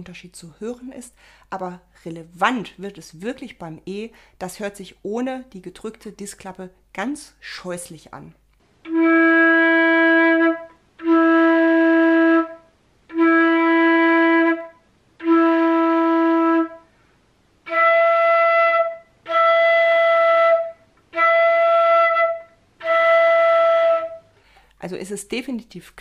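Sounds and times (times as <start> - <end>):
flute playing held notes: 8.8 - 16.8, 17.6 - 24.3.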